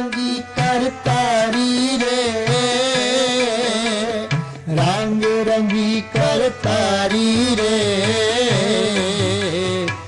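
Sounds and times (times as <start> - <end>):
harmonium accompaniment: 0.0 - 10.0.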